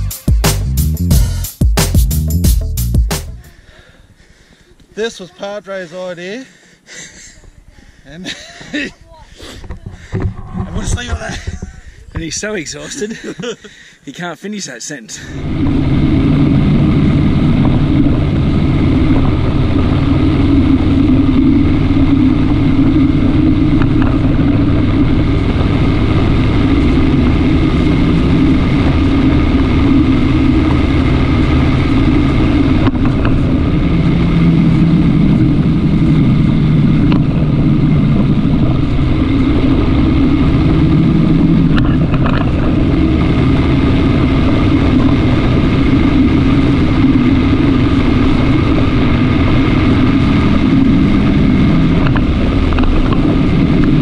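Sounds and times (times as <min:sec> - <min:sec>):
vehicle engine running: 0:00.0 - 0:03.6, 0:15.2 - 0:54.0
road noise: 0:00.0 - 0:54.0
wind noise: 0:08.5 - 0:12.7, 0:15.3 - 0:54.0.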